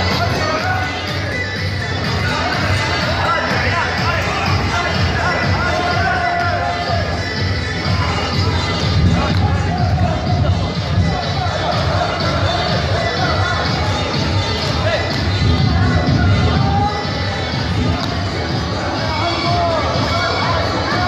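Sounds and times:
voices in a hall: 0.0 - 21.0
low thumping beat: 1.2 - 18.8.

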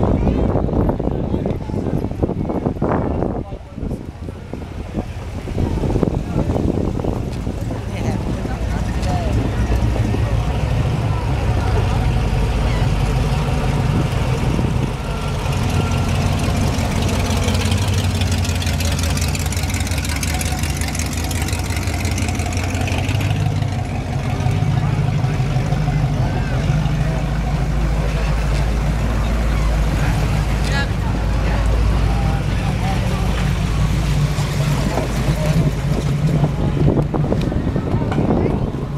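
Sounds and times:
car engines rumbling past: 0.0 - 38.9
people talking: 0.0 - 38.9.

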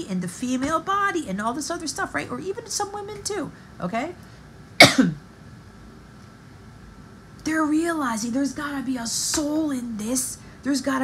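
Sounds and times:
woman coughing: 4.8 - 5.2.

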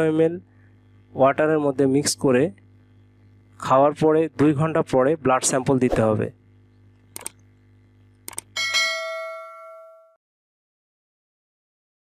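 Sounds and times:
short clicks: 7.0 - 7.5, 8.2 - 8.5
bright bell ding: 8.6 - 10.2.

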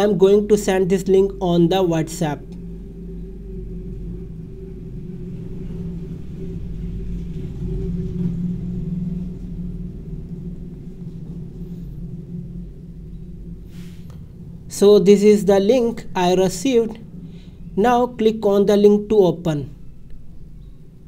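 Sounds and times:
low droning hum: 0.0 - 21.0.

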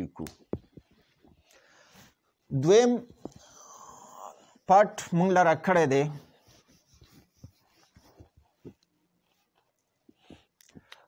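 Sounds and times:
marker pen on whiteboard: 0.4 - 3.8, 4.4 - 11.0.

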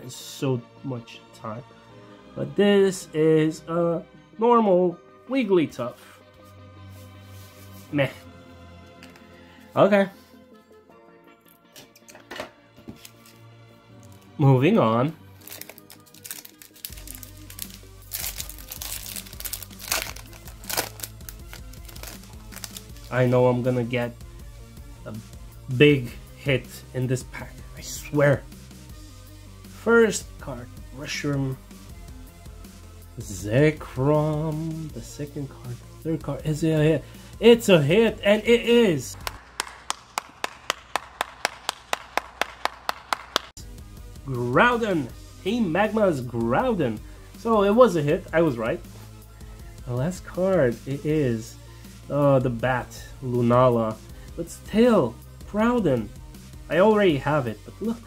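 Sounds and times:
foil wrapper crinkling: 15.4 - 23.2
person clapping: 39.2 - 43.6.

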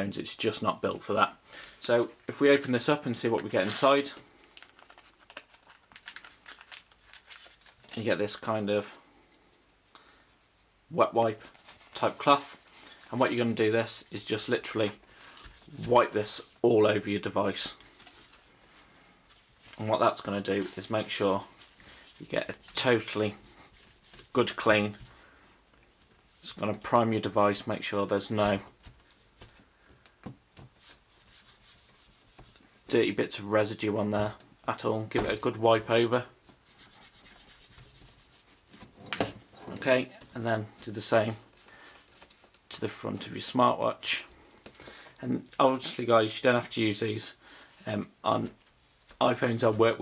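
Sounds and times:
wet wipe rustling: 3.2 - 8.4, 28.5 - 33.3, 36.4 - 39.0.

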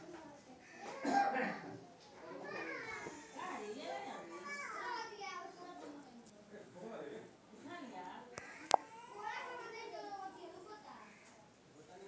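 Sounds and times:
children talking and calling: 0.0 - 6.5, 7.5 - 11.7.

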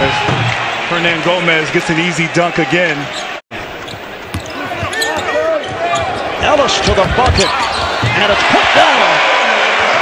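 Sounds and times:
shoe squeaks: 3.1 - 6.5, 7.2 - 8.2.

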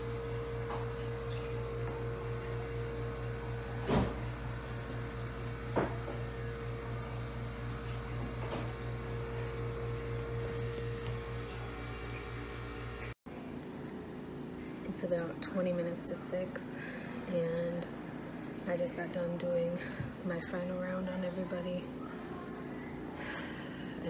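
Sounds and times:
appliance electrical hum: 0.0 - 24.0.

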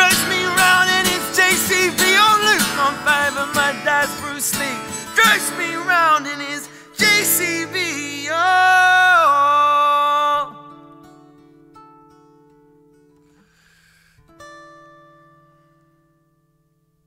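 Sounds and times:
acoustic guitar: 0.0 - 17.0.

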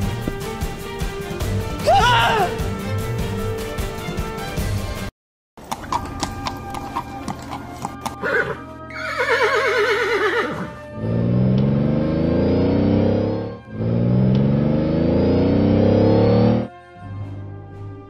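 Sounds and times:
background music: 0.0 - 18.0
hoof clip-clops: 5.6 - 8.4
horse whinnying: 5.9 - 10.8
car engine pulling away: 10.8 - 16.7.

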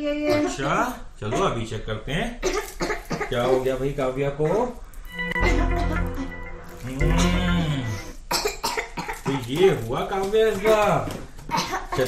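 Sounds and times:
girl coughing: 2.4 - 3.4, 8.3 - 9.4, 11.5 - 12.0
background music: 5.1 - 8.3.

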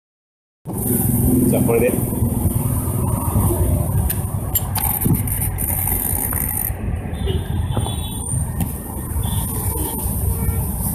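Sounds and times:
road traffic rumble: 0.6 - 10.9.

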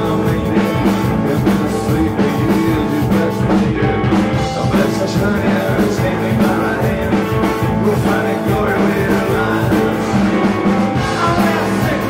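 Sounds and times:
driving drum beat: 0.0 - 12.0
live rock band playing: 0.0 - 12.0.

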